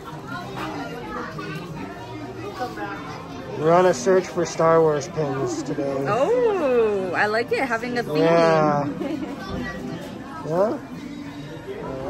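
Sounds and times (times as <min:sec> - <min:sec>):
indistinct voices of people and children: 0:00.0 - 0:12.0.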